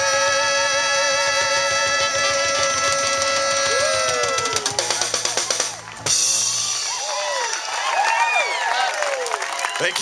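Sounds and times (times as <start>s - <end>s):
trumpet holding notes: 0.0s - 4.9s
saxophone holding notes: 0.0s - 5.6s
bass guitar: 0.0s - 7.5s.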